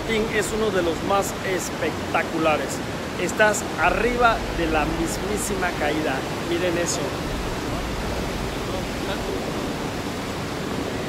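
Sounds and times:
waterfall roaring: 0.0s - 11.0s.

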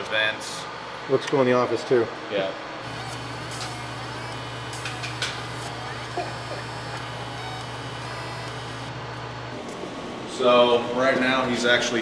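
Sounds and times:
laser engraver humming: 2.8s - 10.3s.

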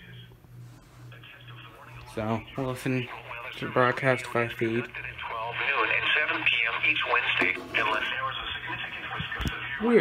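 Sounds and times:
broadcast voice from small speaker: 1.1s - 10.0s.

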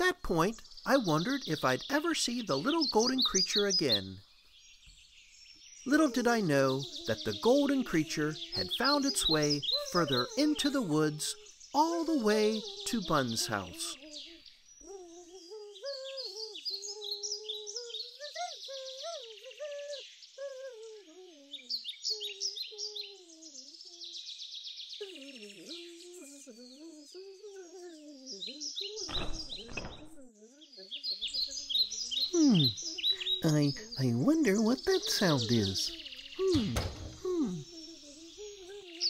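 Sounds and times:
birdsong chirping: 0.0s - 39.0s
humming a wandering tune: 5.9s - 39.0s.

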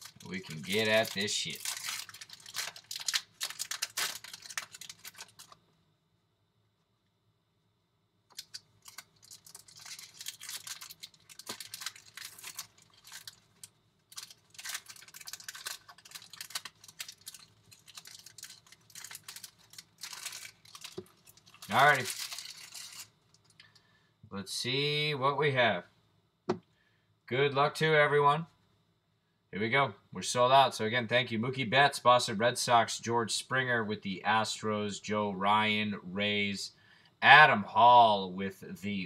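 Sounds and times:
foil wrappers tearing and crinkling: 0.0s - 5.6s, 8.3s - 23.6s.

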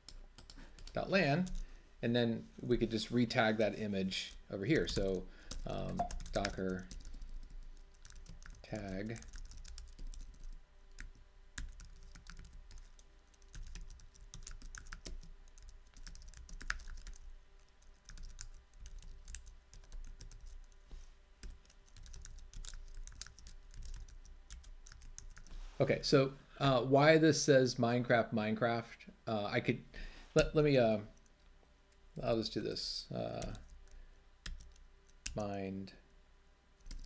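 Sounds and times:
computer keyboard typing: 4.8s - 20.8s, 21.4s - 25.5s, 33.4s - 35.4s, 36.8s - 37.0s.

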